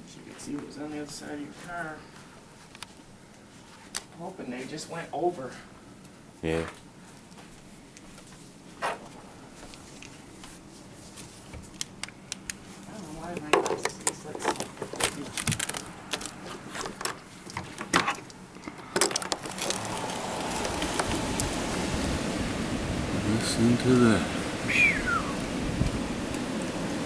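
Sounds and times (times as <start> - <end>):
sharp clicks and rattles: 13.3 - 21.5
steady rushing noise: 19.2 - 27.0.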